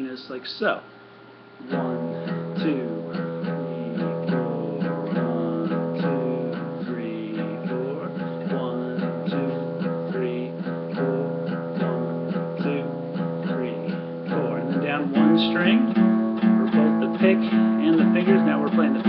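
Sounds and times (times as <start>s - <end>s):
acoustic guitar blues shuffle: 1.6s - 19.0s.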